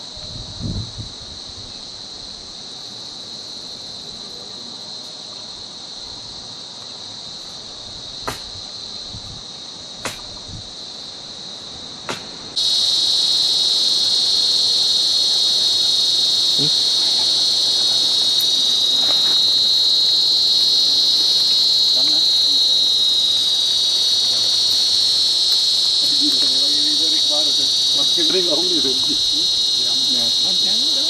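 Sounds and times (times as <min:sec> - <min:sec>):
insect chorus drone: 0:00.0 - 0:31.0.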